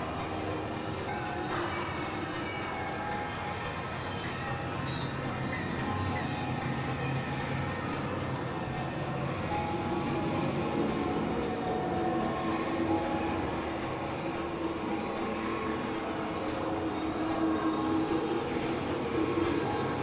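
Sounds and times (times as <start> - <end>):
faint treble ticking: 0.0 - 20.0
synthesizer drone noise music: 0.0 - 20.0.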